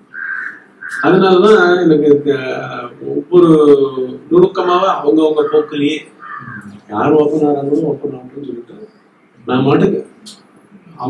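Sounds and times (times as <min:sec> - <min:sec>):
man talking: 0:00.9 - 0:10.3.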